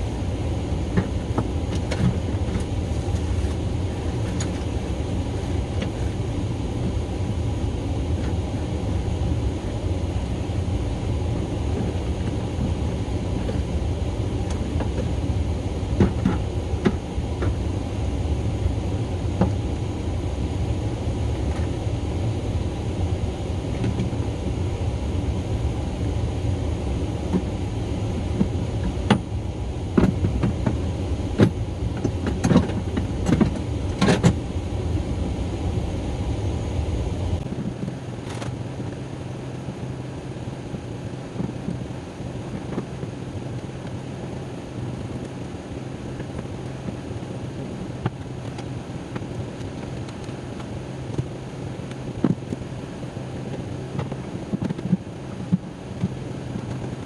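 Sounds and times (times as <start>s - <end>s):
steady low rumble: 0.0s - 57.0s.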